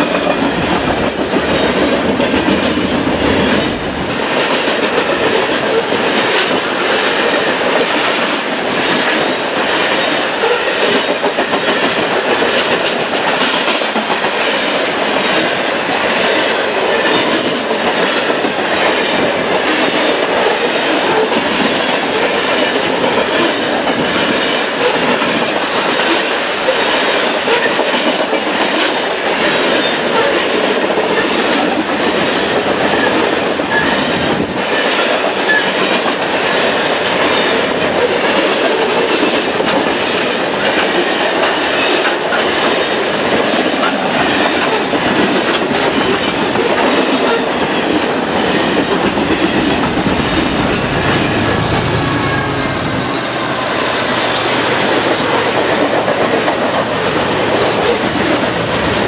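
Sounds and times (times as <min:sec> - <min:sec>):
wheels clicking over rail joints: 0:00.0 - 0:52.0
freight train rumbling past: 0:00.0 - 0:59.0.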